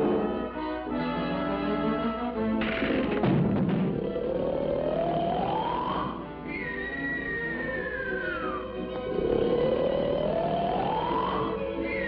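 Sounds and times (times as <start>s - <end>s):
cartoon rising glide: 4.0s - 12.0s.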